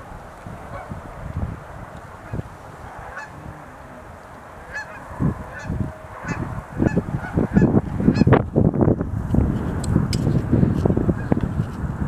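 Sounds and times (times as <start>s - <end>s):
low rumble: 0.0s - 11.4s
cranes calling: 2.0s - 8.4s.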